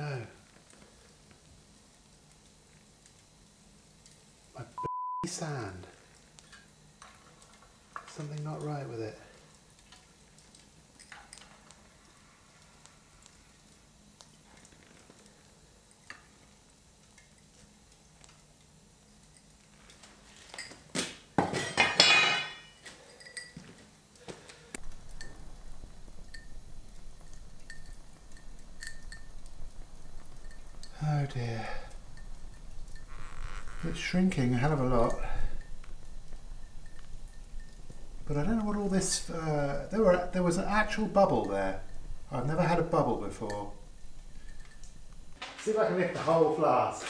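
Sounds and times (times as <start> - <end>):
metal clattering on concrete: 21.4 - 23.6
faint metal clinks: 22.0 - 24.0, 24.9 - 38.7, 40.2 - 45.4.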